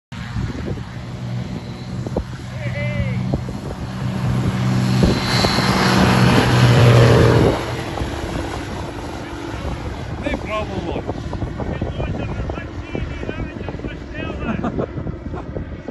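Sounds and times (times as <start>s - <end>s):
ultralight aircraft engine and propeller: 0.1s - 15.9s.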